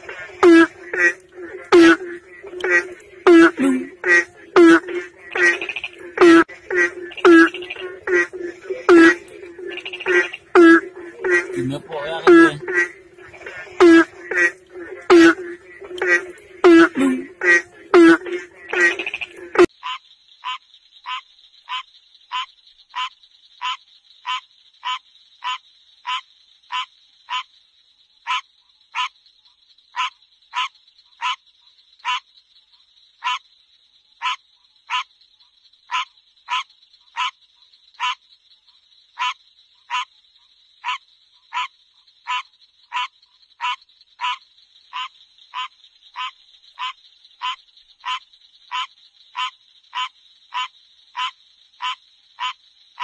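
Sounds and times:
lower-voiced frog calling: 0.0s - 53.0s
tree frog calling: 0.0s - 53.0s.

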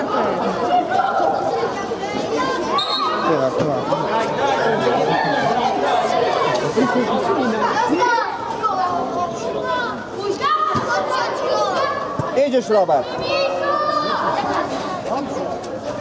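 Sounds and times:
children and adults shouting: 0.0s - 14.8s.

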